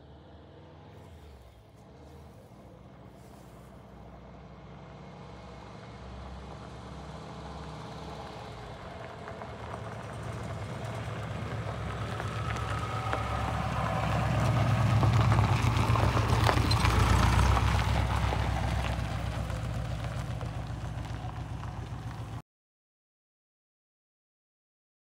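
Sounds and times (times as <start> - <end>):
car engine approaching: 0.0 - 22.4
gravel crackling under tyres: 0.9 - 22.4.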